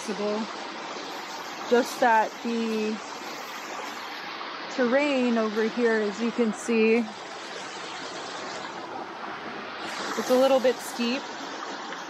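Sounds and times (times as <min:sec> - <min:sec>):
waterfall and stream rushing: 0:00.0 - 0:12.0.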